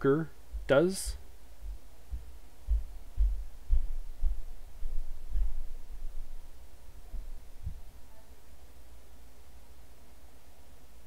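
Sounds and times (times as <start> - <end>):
low dull thumps: 0.0 - 8.1.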